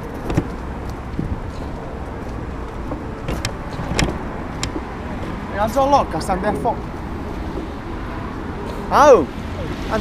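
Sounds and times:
car rumble and road noise: 0:00.0 - 0:10.0
sharp clicks or knocks: 0:02.9 - 0:04.9.

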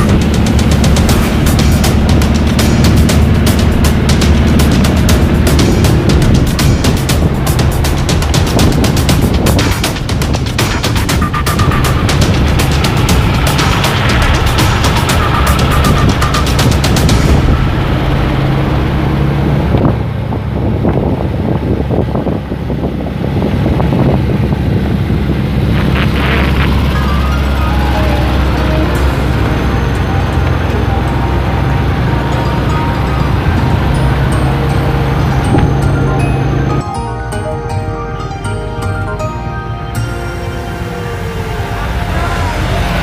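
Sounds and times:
background music: 0:00.0 - 0:20.3, 0:25.8 - 0:43.0
car driving with low drone: 0:00.0 - 0:43.0.

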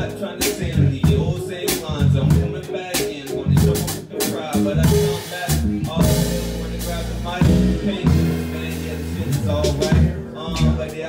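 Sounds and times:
bass: 0:00.0 - 0:11.0
chords: 0:00.0 - 0:11.0
drum kit hits and cymbals: 0:00.0 - 0:11.0.

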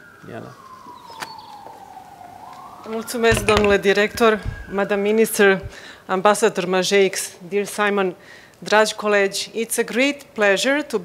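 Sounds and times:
distant siren wailing: 0:00.0 - 0:06.3.

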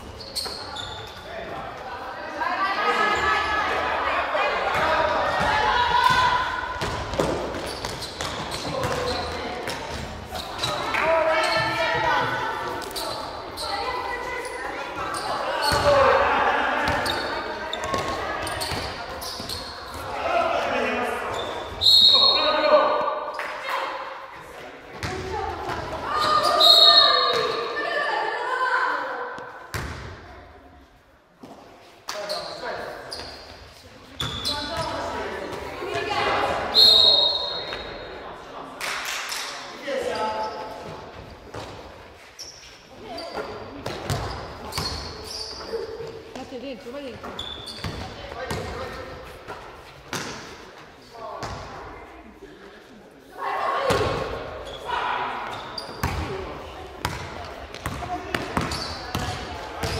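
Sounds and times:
basketball bouncing on gym floor: 0:04.8 - 0:10.1, 0:24.9 - 0:26.0, 0:43.4 - 0:45.1, 0:47.1 - 0:48.9, 0:55.9 - 0:56.4, 0:57.0 - 0:59.9
referee's whistle: 0:21.7 - 0:22.6, 0:26.4 - 0:27.5, 0:36.7 - 0:37.8.

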